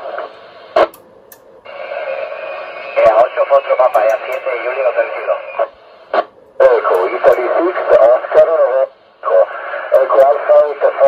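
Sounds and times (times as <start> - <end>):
man speaking over radio: 2.9 - 5.7, 6.6 - 11.0.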